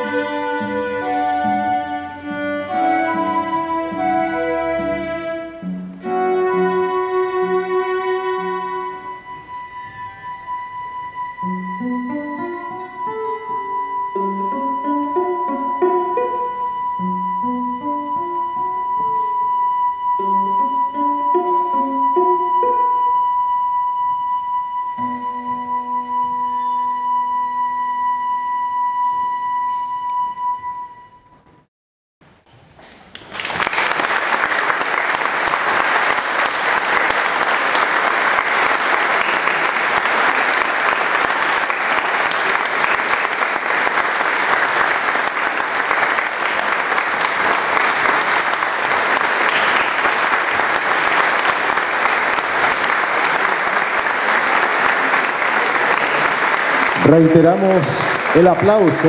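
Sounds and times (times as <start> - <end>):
flute viola and guitar trio: 0.0 - 31.4
audience applause: 33.1 - 59.0.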